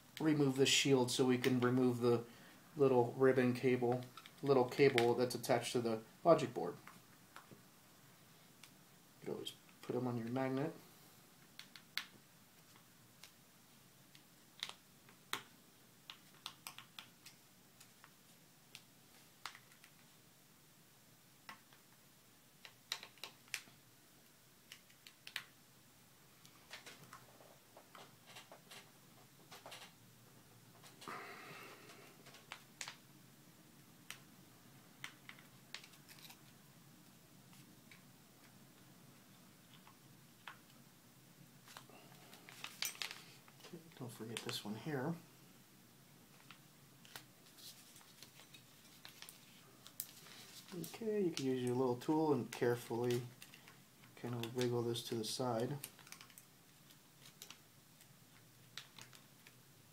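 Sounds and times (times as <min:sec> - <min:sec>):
small clicks and taps: 0:11.4 - 0:13.4, 0:14.1 - 0:20.1, 0:22.6 - 0:23.8, 0:24.7 - 0:25.6, 0:55.8 - 0:59.6.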